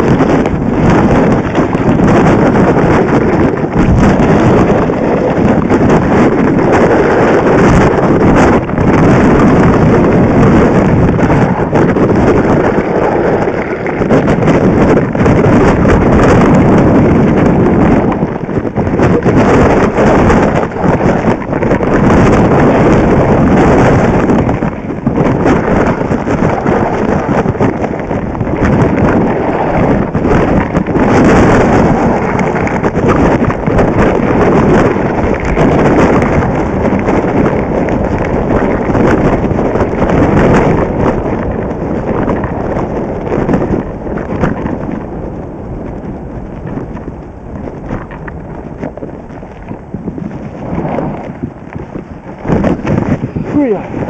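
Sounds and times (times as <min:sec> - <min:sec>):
skis scraping over snow: 0:00.0 - 0:54.0
wind buffeting microphone: 0:00.0 - 0:54.0.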